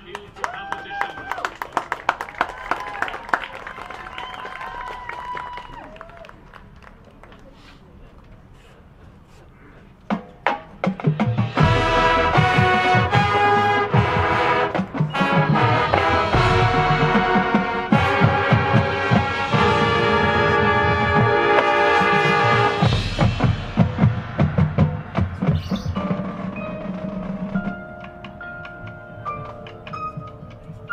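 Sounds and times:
marching band playing: 0:10.1 - 0:30.9
sharp drum hits: 0:10.6 - 0:20.0, 0:21.0 - 0:26.6.

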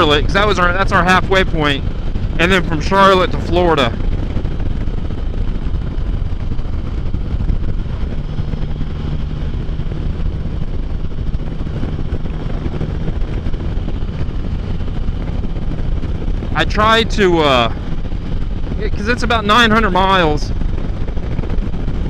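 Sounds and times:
motorcycle engine drone: 0:00.0 - 0:22.0
wind rush: 0:00.0 - 0:22.0.

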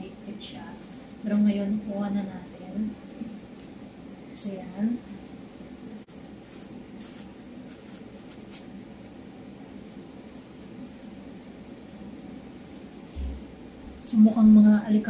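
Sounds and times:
soft thump: 0:13.2 - 0:14.0.

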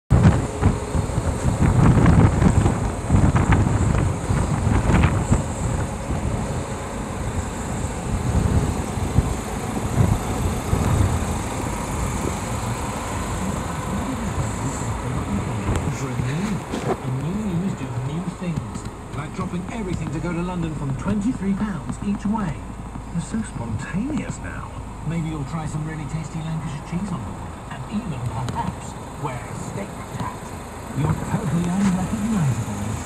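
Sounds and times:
low irregular rumbling: 0:00.1 - 0:33.0.

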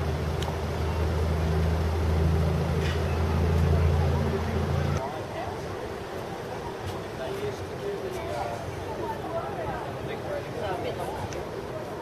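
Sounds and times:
vehicle engine humming: 0:00.0 - 0:05.1.

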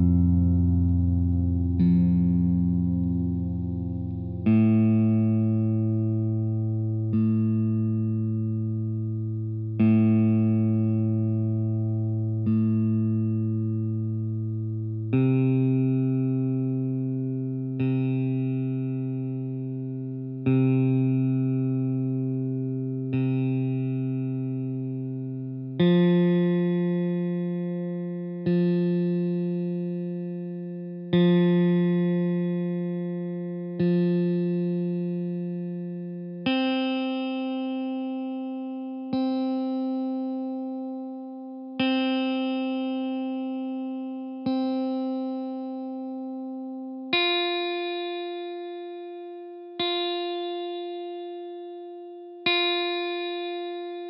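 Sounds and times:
guitar strings plucked: 0:00.0 - 0:54.0.

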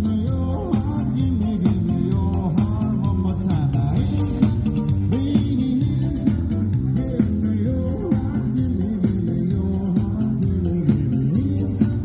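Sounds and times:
bass guitar: 0:00.0 - 0:12.0
drum and cymbal beat: 0:00.0 - 0:12.0.

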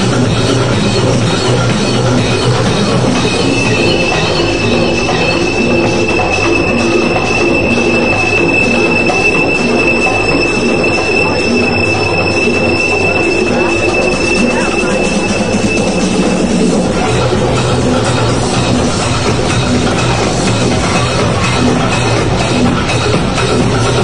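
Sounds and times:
pulsing synth and bass pattern: 0:00.0 - 0:24.0
held high synthesizer tone: 0:02.7 - 0:18.3.

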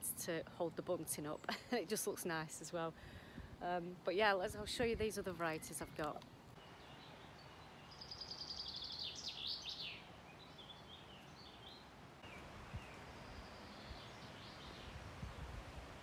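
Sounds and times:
faint outdoor hiss: 0:00.0 - 0:16.0
songbird singing: 0:03.9 - 0:15.6.

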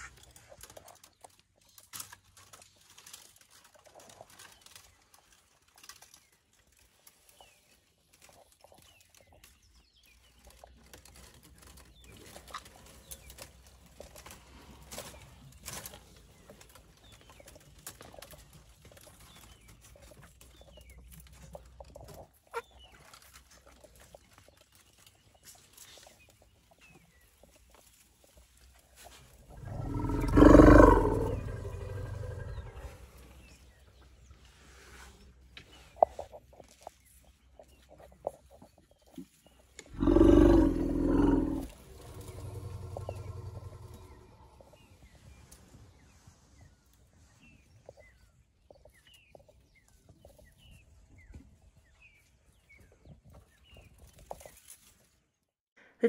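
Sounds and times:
loud low elephant call: 0:29.6 - 0:33.0, 0:40.0 - 0:44.8.

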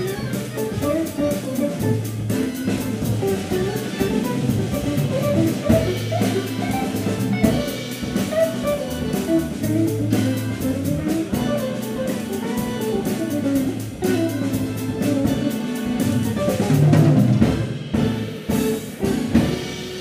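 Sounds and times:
drum kit: 0:00.0 - 0:20.0
electric guitar: 0:00.0 - 0:20.0
low bass line: 0:00.0 - 0:20.0.

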